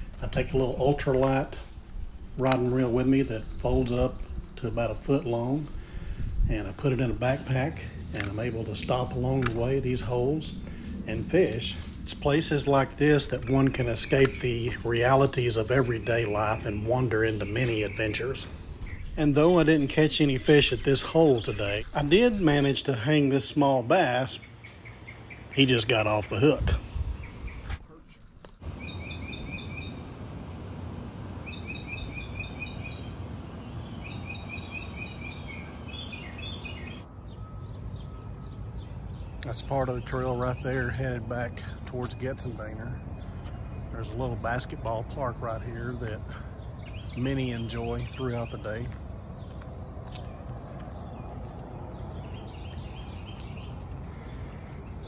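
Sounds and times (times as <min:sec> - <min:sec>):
low outdoor rumble: 0:00.0 - 0:55.0
songbird chirping: 0:00.0 - 0:55.0
wind rush: 0:05.6 - 0:14.9, 0:26.5 - 0:27.9.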